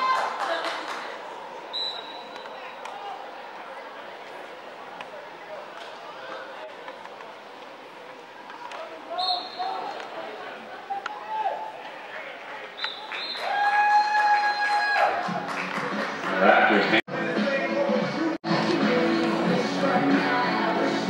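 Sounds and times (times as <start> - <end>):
players calling and shouting: 8.4 - 15.3
long held shout: 13.4 - 15.2.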